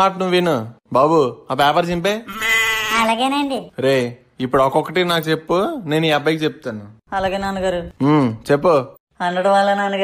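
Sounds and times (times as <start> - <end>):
wavering bleat-like cry: 2.3 - 3.1.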